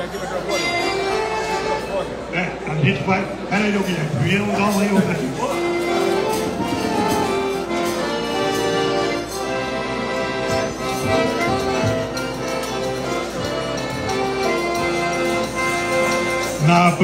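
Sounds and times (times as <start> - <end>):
piano accordion melody: 0.0 - 17.0.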